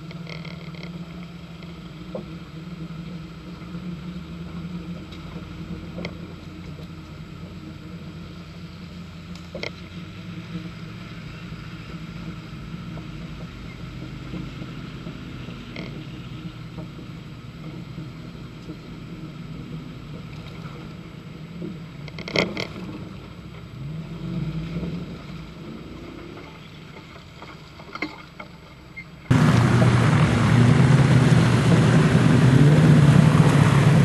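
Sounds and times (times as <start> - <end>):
engine running at low revs: 0.0 - 34.0.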